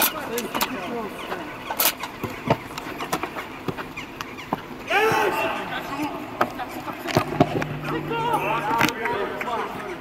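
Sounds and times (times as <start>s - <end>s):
players calling out: 4.9s - 9.5s.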